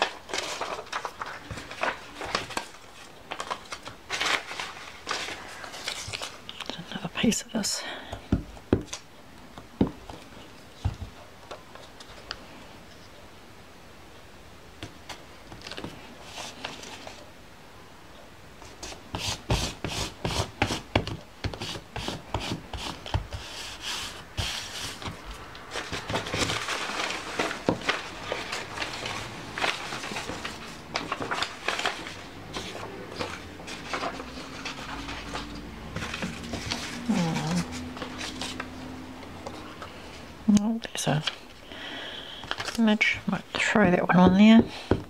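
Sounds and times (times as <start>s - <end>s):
paper rustling and rubbing: 0.0s - 6.9s, 15.6s - 17.3s, 18.6s - 40.2s, 42.4s - 43.8s
paper tapping and crinkling: 0.0s - 7.2s, 8.1s - 12.5s, 14.8s - 17.3s, 18.6s - 40.1s, 42.3s - 45.0s.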